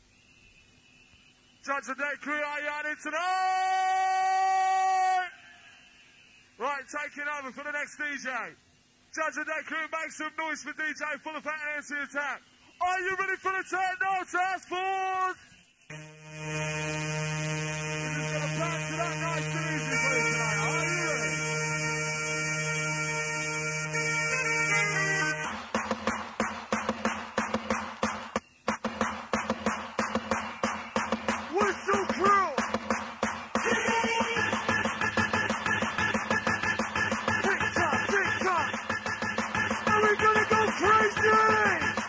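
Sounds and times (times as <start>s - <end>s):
voice holding high note: 15.9s - 25.4s
held synth chord: 15.9s - 25.6s
swooping bending synth tones: 15.9s - 25.6s.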